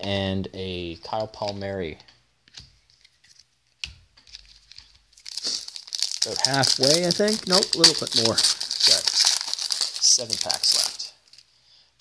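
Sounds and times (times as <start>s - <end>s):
foil pack crinkling and tearing: 4.3s - 11.4s.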